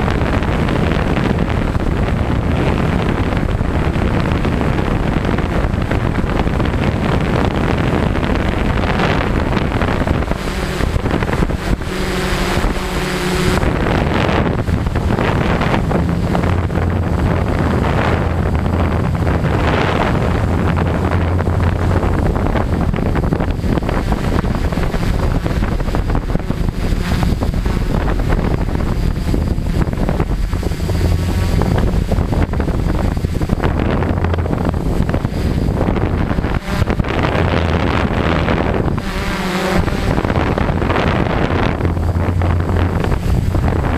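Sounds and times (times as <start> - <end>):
drone motors humming: 0.0 - 43.9
wind buffeting microphone: 0.0 - 43.9.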